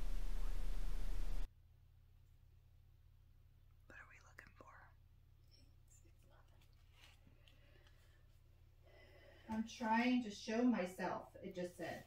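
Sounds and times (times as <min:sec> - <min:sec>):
low steady hum: 0:00.0 - 0:12.0
faint whispering: 0:03.9 - 0:07.6.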